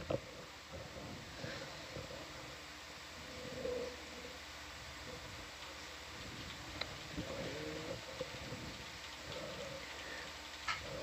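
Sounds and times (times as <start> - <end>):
faint background hum and hiss: 0.0 - 11.0.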